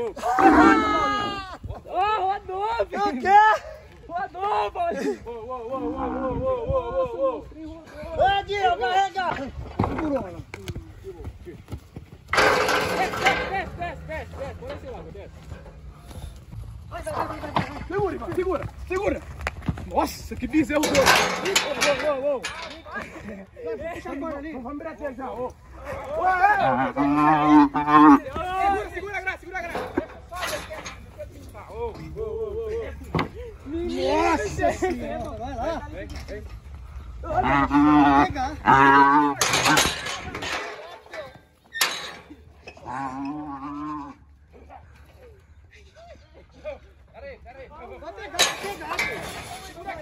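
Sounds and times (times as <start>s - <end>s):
people shouting: 0.0s - 7.5s
wind rumbling on microphone: 5.7s - 10.0s.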